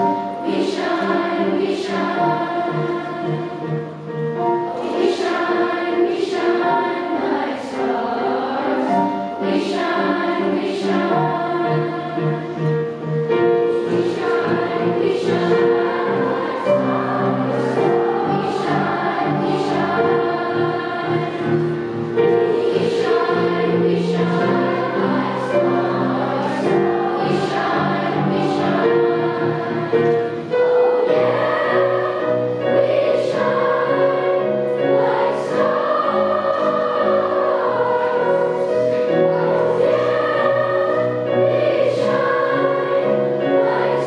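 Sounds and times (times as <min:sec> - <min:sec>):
children's choir singing: 0:00.0 - 0:44.0.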